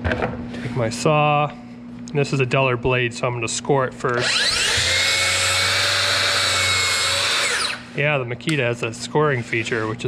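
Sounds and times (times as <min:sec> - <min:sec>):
saw motor winding down: 0:04.1 - 0:07.9
track saw whining: 0:04.1 - 0:07.9.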